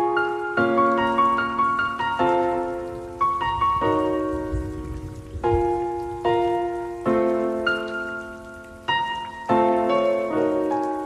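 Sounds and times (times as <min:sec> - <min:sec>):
slow piano chords: 0:00.0 - 0:11.0.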